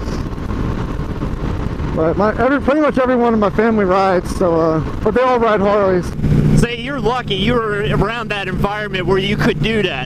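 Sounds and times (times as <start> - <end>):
road noise: 0.0 - 10.0
wind rushing over microphone: 0.0 - 10.0
motorcycle engine cruising: 5.7 - 10.0.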